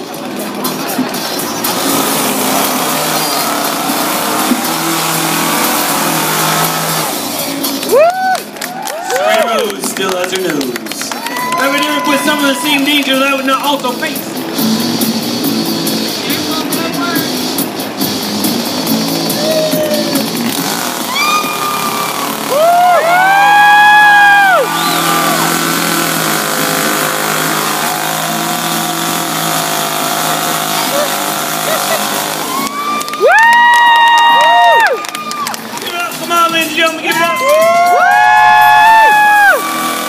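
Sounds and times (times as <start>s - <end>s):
background music: 0.0s - 40.0s
crowd noise: 0.0s - 40.0s
chainsaw revving: 0.9s - 8.0s, 20.1s - 36.6s, 38.4s - 40.0s.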